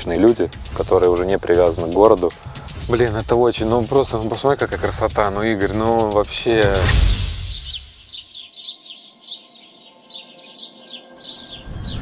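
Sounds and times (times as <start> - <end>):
small songbirds chirping: 7.2 - 12.0.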